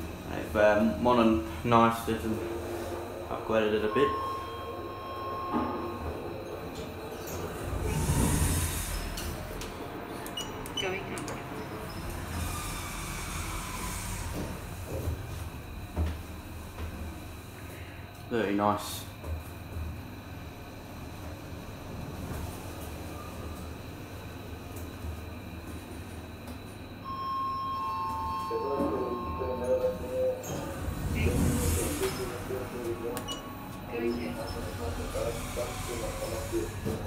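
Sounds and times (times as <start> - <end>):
lift car rumbling: 0.0 - 17.0, 28.4 - 37.0
high hiss of air: 7.8 - 9.3
recorded man's voice announcement: 28.3 - 30.4, 31.4 - 37.0.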